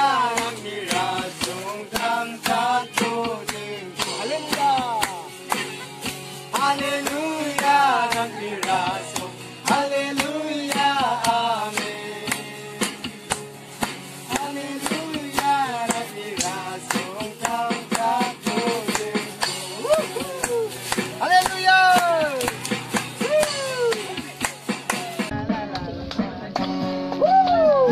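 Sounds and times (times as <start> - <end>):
group singing together: 0.0 - 20.2
strummed acoustic guitar: 0.0 - 27.2.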